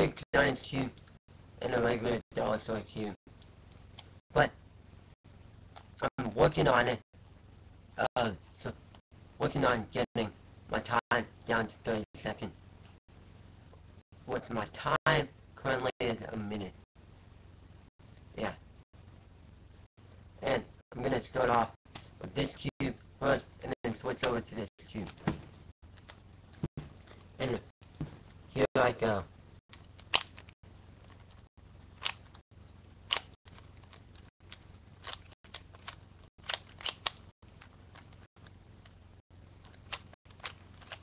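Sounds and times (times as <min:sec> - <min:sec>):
low steady hiss: 0:00.0 - 0:35.2
faint steady hum: 0:00.0 - 0:41.0
puzzle cube clicking and scraping: 0:33.1 - 0:38.2, 0:39.7 - 0:41.0.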